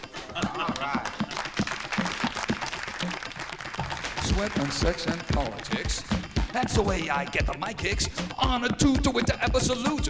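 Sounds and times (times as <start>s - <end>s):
audience applauding: 0.0s - 7.1s
low drum beat thumps: 3.8s - 10.0s.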